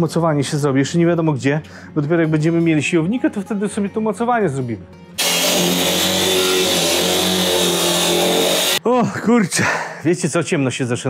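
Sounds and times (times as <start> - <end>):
angle grinder cutting steel: 5.2 - 8.8.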